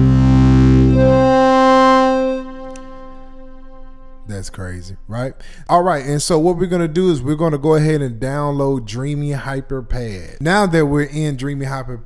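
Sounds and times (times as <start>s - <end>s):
sampled chord: 0.0s - 5.1s.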